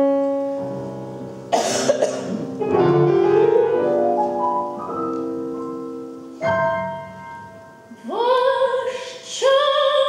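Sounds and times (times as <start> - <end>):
grand piano sustained notes: 0.0 - 9.1
loud cough: 1.6 - 2.4.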